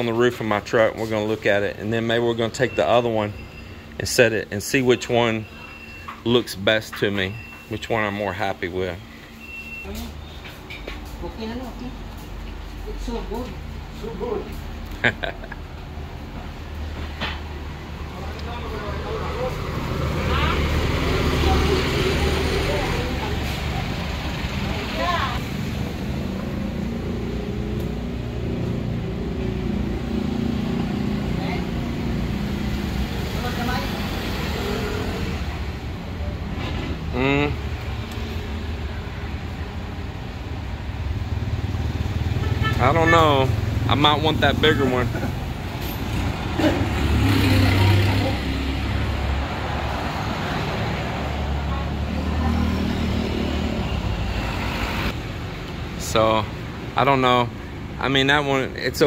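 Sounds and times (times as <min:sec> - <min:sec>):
vehicle engines humming: 0:00.0 - 0:59.0
passing cars and motorcycles: 0:14.0 - 0:59.0.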